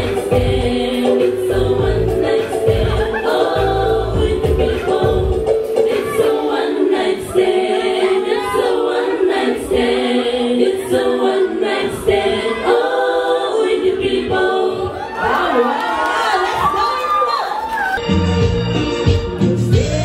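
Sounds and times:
women singing in harmony: 0.0 - 16.7.

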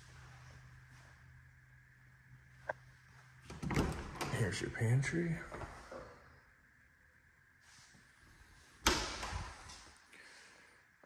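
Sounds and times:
door shutting: 3.5 - 4.6, 8.8 - 9.9.

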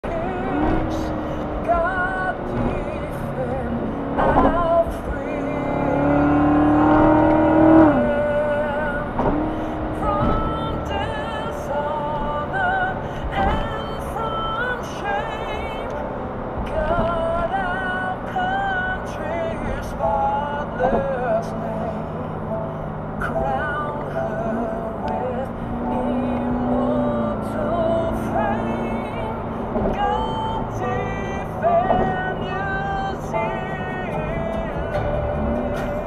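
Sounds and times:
car engine drone: 0.0 - 36.0
music with singing: 0.0 - 36.0
road noise: 0.0 - 36.0.

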